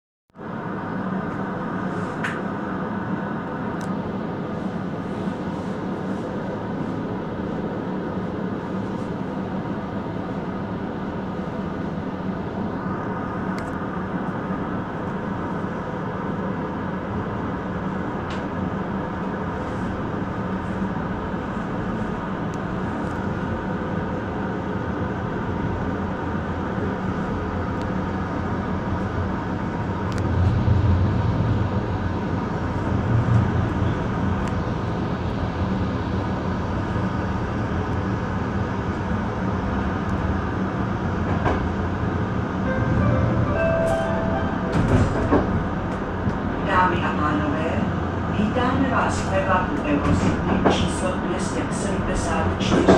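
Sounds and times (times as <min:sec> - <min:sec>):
train wheels rumbling on rails: 0:04.9 - 0:52.9.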